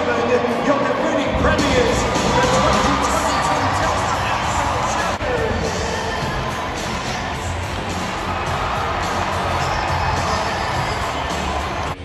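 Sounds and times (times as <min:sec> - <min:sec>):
loud music over sound system: 0:00.0 - 0:12.0
stadium crowd cheering: 0:00.0 - 0:12.0.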